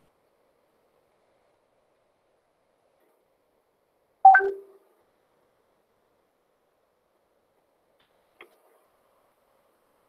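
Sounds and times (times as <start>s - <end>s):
electronic notification chime: 4.3s - 4.7s.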